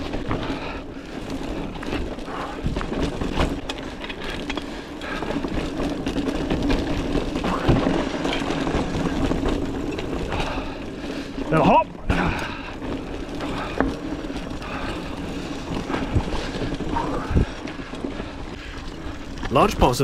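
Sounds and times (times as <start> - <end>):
bike frame rattle: 0.0 - 20.0
bike tyre rumble on dirt: 0.0 - 20.0
wheels knocking on ruts and rocks: 0.0 - 20.0.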